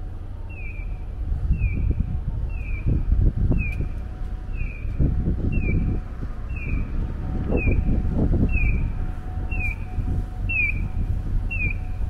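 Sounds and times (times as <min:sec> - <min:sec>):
street and footstep noise: 0:00.0 - 0:12.0
crossing signal bird-like chirp: 0:00.5 - 0:01.0, 0:04.5 - 0:06.9, 0:08.5 - 0:08.9, 0:09.5 - 0:12.0.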